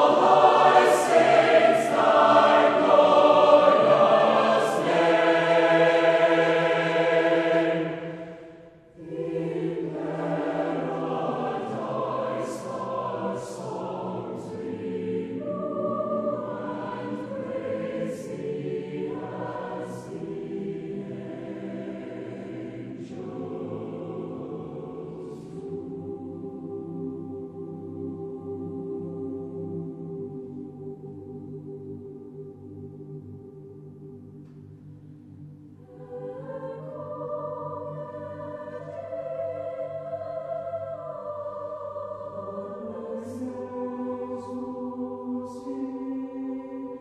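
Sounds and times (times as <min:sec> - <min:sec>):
mixed choir singing a hymn: 0:00.0 - 0:34.7, 0:35.8 - 0:47.0.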